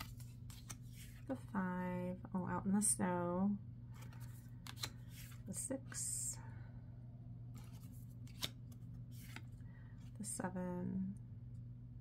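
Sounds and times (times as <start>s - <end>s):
cards being handled: 0.0s - 1.5s, 3.9s - 5.6s, 7.5s - 10.2s
faint steady hum: 0.0s - 12.0s.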